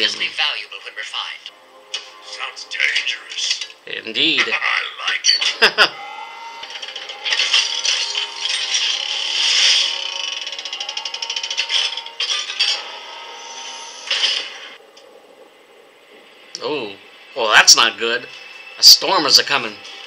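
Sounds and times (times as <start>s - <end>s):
faint steady tones: 0.0s - 20.0s.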